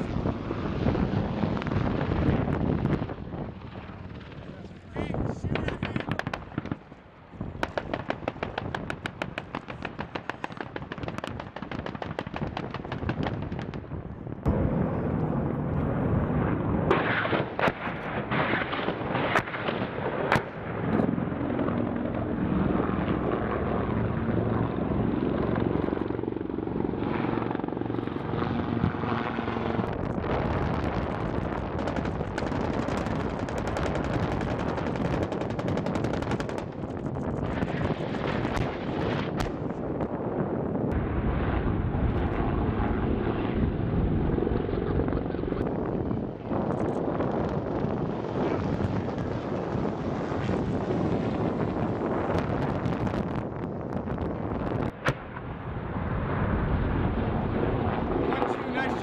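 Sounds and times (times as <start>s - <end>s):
helicopter rotor beating: 0.0s - 7.0s, 19.9s - 55.0s, 55.7s - 59.0s
gunfire: 5.5s - 6.8s, 7.6s - 13.8s, 16.9s - 20.5s
sharp cracks: 5.5s - 6.9s, 7.6s - 13.9s, 31.4s - 39.6s, 54.9s - 55.5s.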